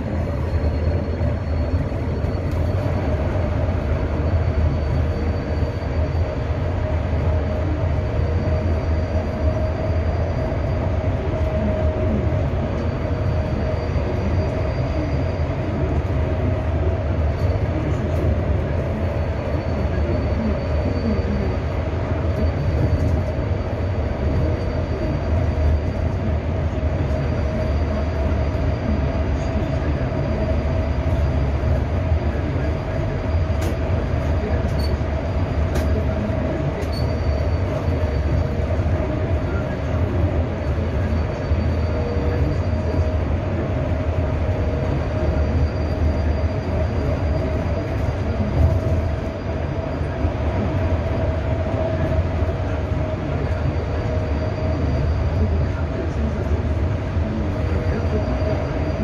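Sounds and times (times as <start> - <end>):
road rumble: 0.0 - 59.0.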